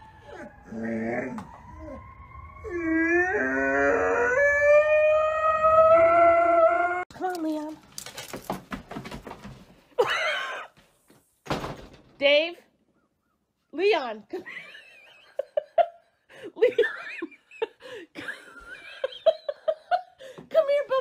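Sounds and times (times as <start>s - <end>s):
dog howling: 0.2s - 7.1s.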